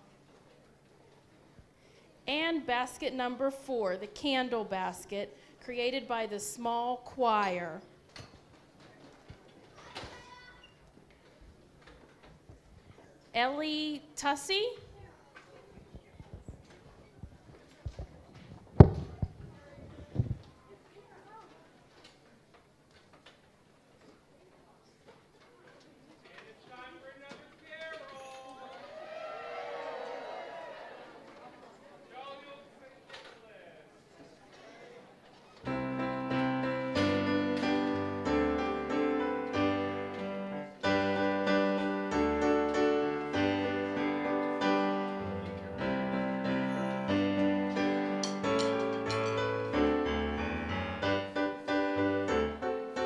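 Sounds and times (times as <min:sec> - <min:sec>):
murmur of audience voices: 0:28.1 - 0:36.2
band instruments warming up: 0:35.7 - 0:53.0.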